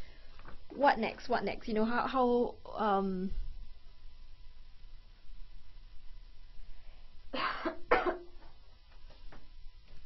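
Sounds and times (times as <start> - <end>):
woman coughing: 7.4 - 8.4.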